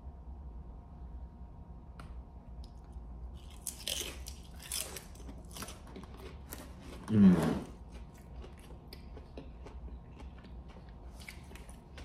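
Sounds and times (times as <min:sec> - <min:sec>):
potato chip crunching: 0:03.4 - 0:12.0.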